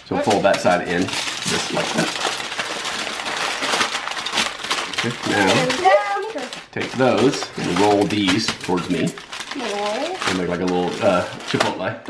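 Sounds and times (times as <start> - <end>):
aluminum foil crinkling: 0.0 - 12.0.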